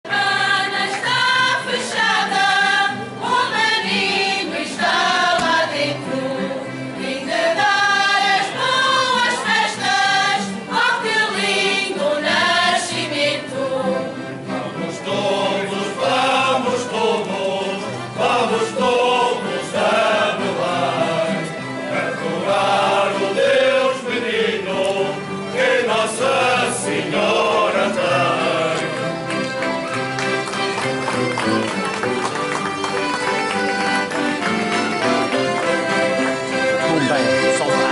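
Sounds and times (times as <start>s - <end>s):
group singing a carol: 0.1s - 29.4s.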